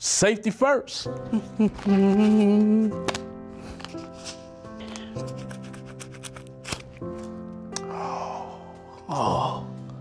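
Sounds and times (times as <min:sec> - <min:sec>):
background music with held chords: 0:00.5 - 0:10.0
work gloves rustling: 0:01.3 - 0:07.4.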